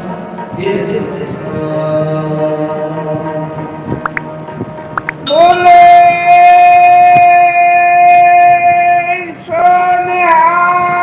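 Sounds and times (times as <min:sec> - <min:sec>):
high male voice singing: 0:05.3 - 0:11.0.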